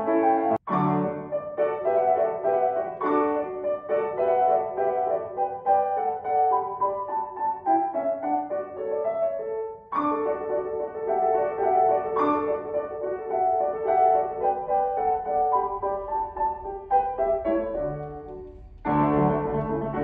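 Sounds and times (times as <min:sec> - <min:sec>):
grand piano classical piece: 0:00.0 - 0:20.0.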